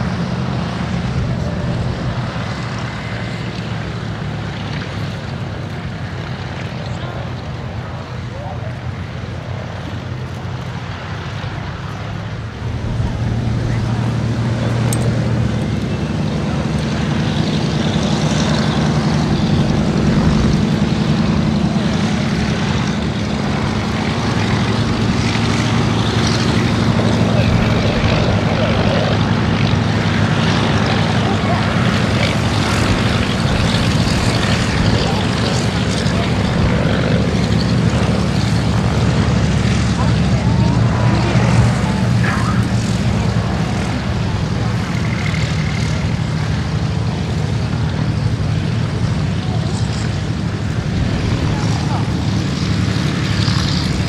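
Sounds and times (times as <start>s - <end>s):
aircraft propeller engines droning: 0.0s - 54.0s.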